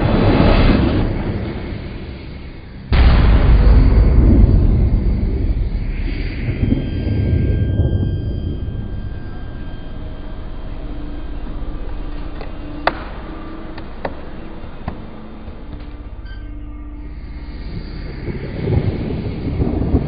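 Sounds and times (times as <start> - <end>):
jet engine rumbling: 0.0 - 20.0
low hum: 0.0 - 20.0.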